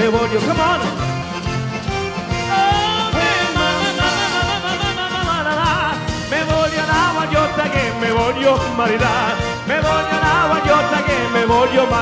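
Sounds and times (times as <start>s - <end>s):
live band playing folk dance: 0.0s - 12.0s
person singing: 2.5s - 12.0s.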